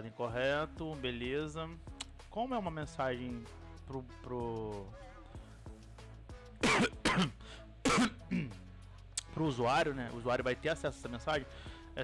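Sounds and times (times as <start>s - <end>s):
quiet background music: 0.0s - 12.0s
man coughing: 6.6s - 8.6s.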